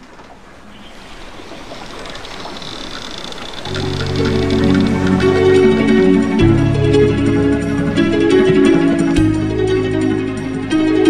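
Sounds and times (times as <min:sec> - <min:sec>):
rushing noise: 0:03.7 - 0:09.9
music with low sustained notes: 0:03.7 - 0:11.0.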